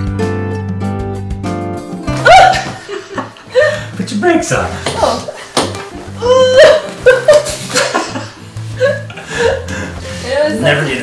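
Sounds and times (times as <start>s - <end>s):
faint background music: 0.0s - 11.0s
woman laughing: 2.2s - 3.8s, 5.0s - 5.5s, 6.2s - 9.7s.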